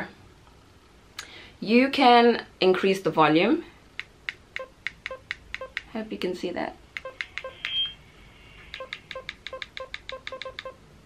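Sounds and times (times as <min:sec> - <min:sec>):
baby monitor short beeps: 0:07.1 - 0:08.0.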